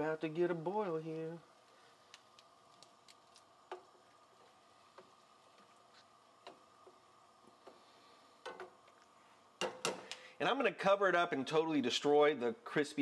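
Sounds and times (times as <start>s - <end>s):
faint steady hum: 0.0s - 13.0s
liquid ticking and popping: 2.0s - 7.8s.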